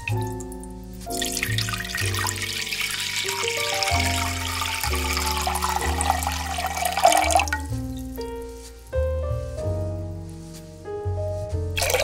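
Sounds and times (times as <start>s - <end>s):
water pouring into metal pot: 0.0s - 7.8s, 11.8s - 12.0s
background music with bass line: 0.0s - 12.0s.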